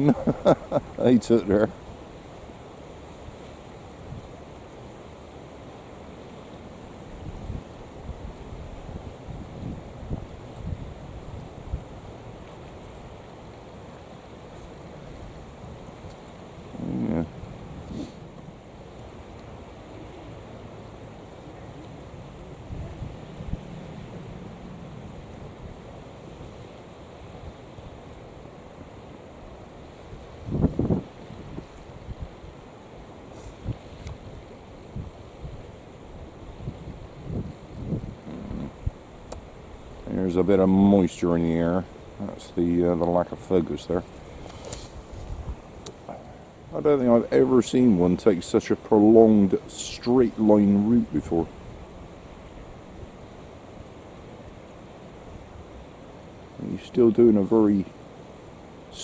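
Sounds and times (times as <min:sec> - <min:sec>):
wind buffeting microphone: 0:07.2 - 0:12.0, 0:22.4 - 0:25.8, 0:30.1 - 0:32.4, 0:33.6 - 0:39.0, 0:44.2 - 0:46.4.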